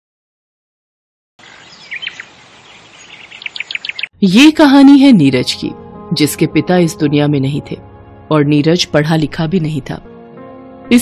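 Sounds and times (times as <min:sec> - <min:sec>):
birds chirping: 0:01.4 - 0:04.1
faint outdoor background hiss: 0:01.4 - 0:05.4.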